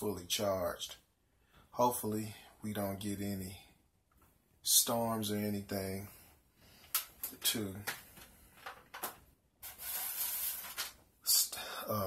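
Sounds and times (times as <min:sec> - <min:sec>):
paper rustling: 0:08.6 - 0:11.0.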